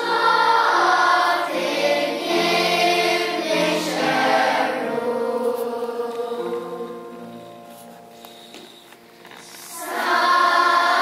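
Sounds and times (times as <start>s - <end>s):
children's choir singing: 0.0s - 7.9s, 9.4s - 11.0s.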